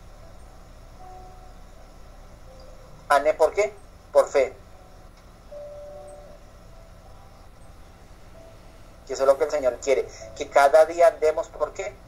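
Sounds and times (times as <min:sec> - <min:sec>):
faint low hum: 0:00.0 - 0:12.0
short steady tone: 0:04.7 - 0:09.0.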